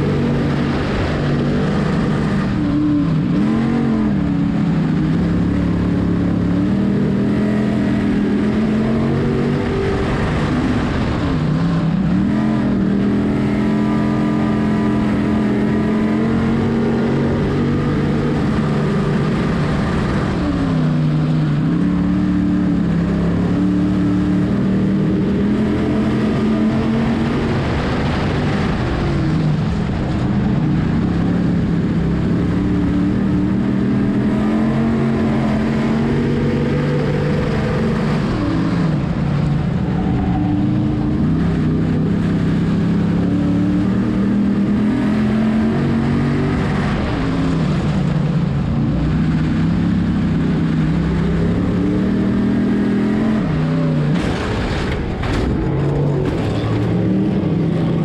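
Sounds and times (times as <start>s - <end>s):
race car engine at speed: 0.0s - 58.0s.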